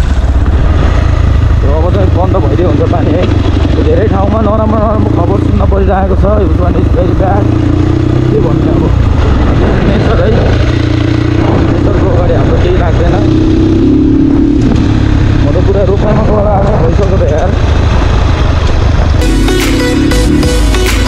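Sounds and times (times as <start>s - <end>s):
dirt bike engine running: 0.0s - 21.0s.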